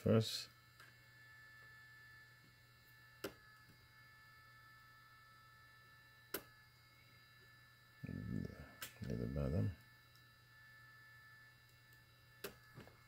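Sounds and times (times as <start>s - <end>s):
faint steady hum: 0.0s - 13.0s
spot welder snaps: 3.2s - 3.7s, 6.3s - 6.5s, 11.7s - 12.9s.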